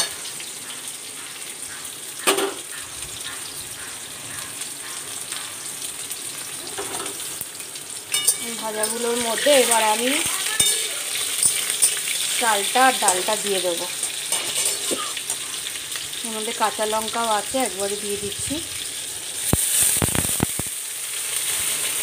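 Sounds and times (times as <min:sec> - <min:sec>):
vegetables sizzling in hot oil: 0:00.0 - 0:22.0
metal spatula scraping a wok: 0:14.3 - 0:15.4.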